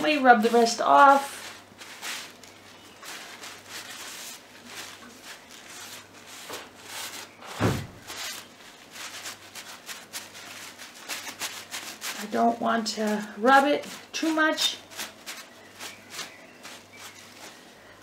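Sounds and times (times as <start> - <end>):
thump: 7.5 - 8.0.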